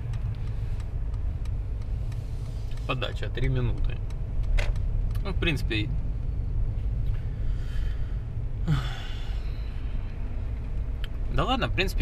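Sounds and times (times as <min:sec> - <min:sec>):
car interior engine and road noise: 0:00.0 - 0:12.0.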